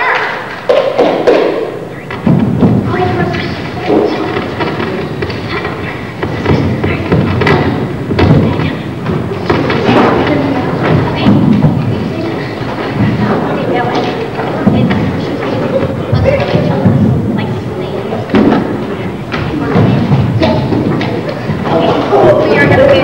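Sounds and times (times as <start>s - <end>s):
people's voices: 0.0s - 23.0s.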